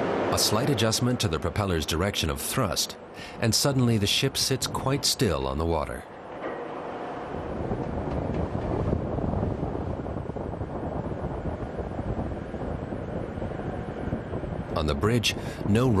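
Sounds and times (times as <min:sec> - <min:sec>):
low rumble: 0:00.0 - 0:15.6
waves breaking along ship hull: 0:00.0 - 0:16.0
wind: 0:00.0 - 0:16.0.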